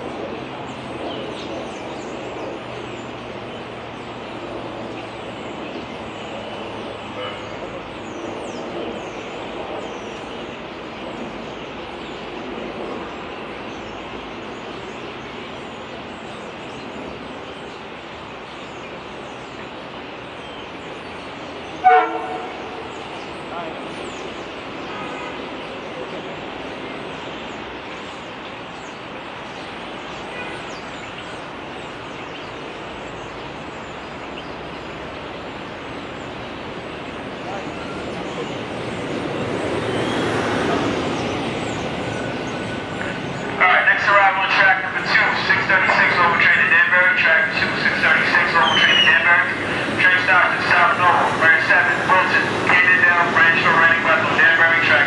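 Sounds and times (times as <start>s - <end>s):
train horn toot: 7.1s - 7.6s, 21.8s - 22.8s
electric train rolling in: 8.9s - 55.0s
public-address announcement: 21.7s - 27.0s, 37.1s - 55.0s.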